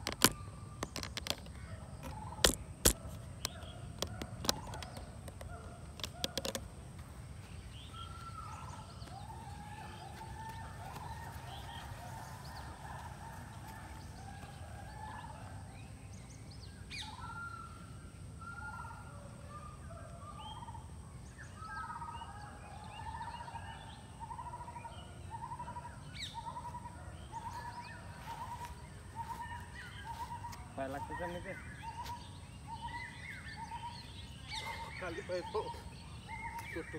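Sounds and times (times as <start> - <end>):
sharp clicks: 0.0 - 6.7
birds chirping: 0.0 - 36.9.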